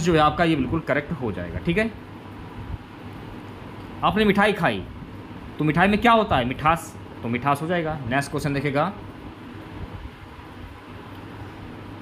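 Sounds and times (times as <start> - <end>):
faint low rumble with hiss: 0.0 - 12.0.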